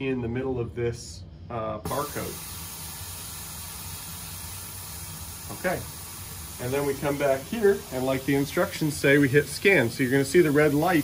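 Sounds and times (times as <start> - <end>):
suction gripper air hiss: 1.9 - 11.0.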